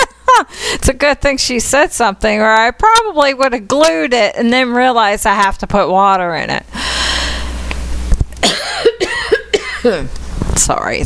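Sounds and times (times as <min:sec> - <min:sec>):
woman coughing: 0:08.4 - 0:10.1.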